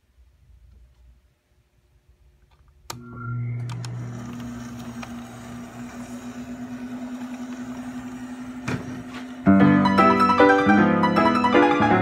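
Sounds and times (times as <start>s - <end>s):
suction pump humming and pulsing: 2.9s - 9.6s.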